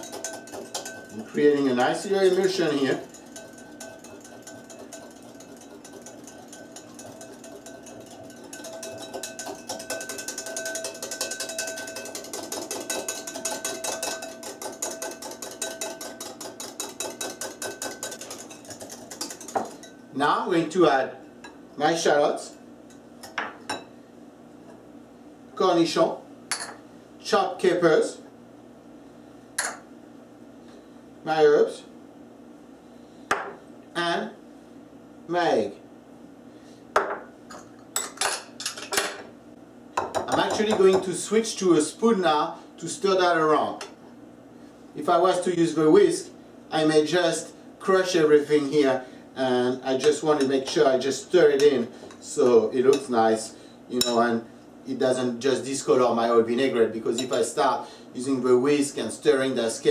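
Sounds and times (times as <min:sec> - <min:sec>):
kitchenware clinking on glass: 0:00.0 - 0:20.0, 0:40.0 - 0:41.2, 0:57.2 - 0:57.5
whisk clicking against glass bowl: 0:00.0 - 0:20.0, 0:40.0 - 0:41.2.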